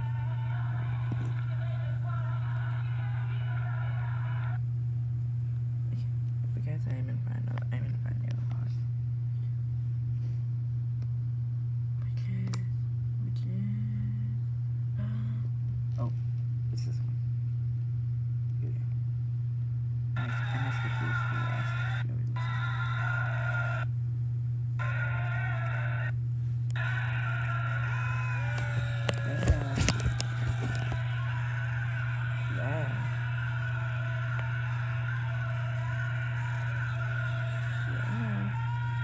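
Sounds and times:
muffled voices: 0.0s - 9.6s, 20.2s - 23.9s, 24.8s - 39.0s
steady low hum: 0.0s - 39.0s
audience noise: 26.8s - 39.0s.

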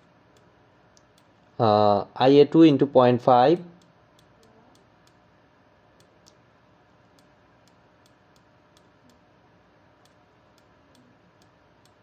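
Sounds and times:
faint irregular clicks: 0.0s - 1.5s, 3.6s - 5.3s, 6.0s - 6.4s, 7.0s - 9.2s, 10.0s - 12.0s.

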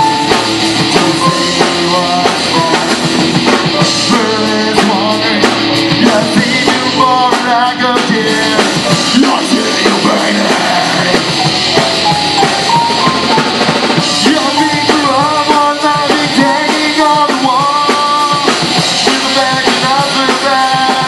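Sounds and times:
person singing: 0.0s - 21.0s
rock band playing live: 0.0s - 21.0s.

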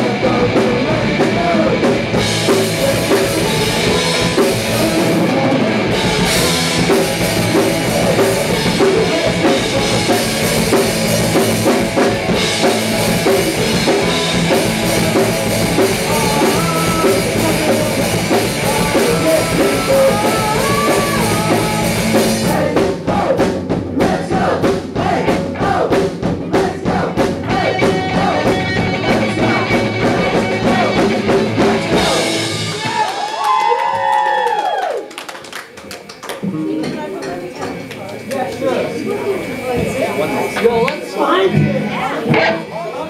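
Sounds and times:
live rock band playing: 0.0s - 33.7s, 36.4s - 43.0s.

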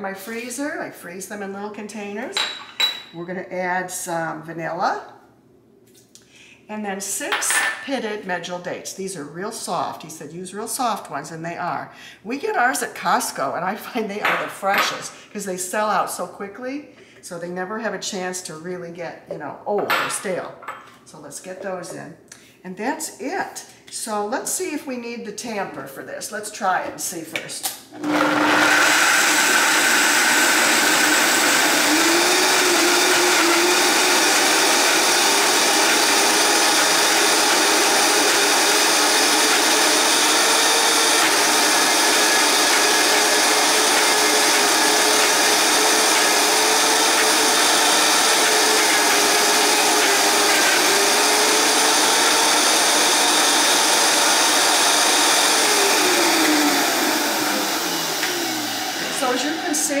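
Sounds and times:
blender running at high speed: 28.0s - 60.0s.

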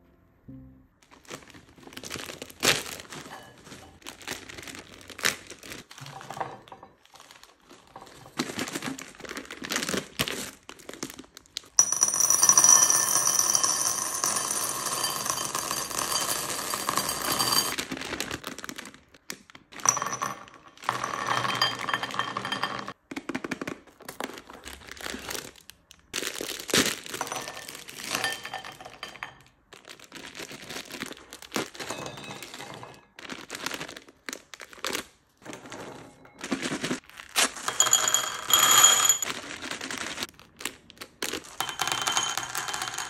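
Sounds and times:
plastic packet crinkling: 1.0s - 6.4s, 7.0s - 11.8s, 17.7s - 19.8s, 23.2s - 28.1s, 29.6s - 32.6s, 33.2s - 35.8s, 36.4s - 37.7s, 39.2s - 41.6s
candies rattling into ceramic bowl: 1.1s - 19.0s, 19.7s - 23.0s, 26.2s - 43.0s
bowl ringing: 37.7s - 39.3s.

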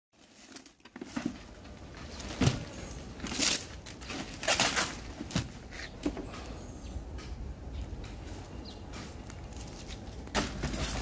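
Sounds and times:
plastic film rustling and crinkling: 0.2s - 5.7s.

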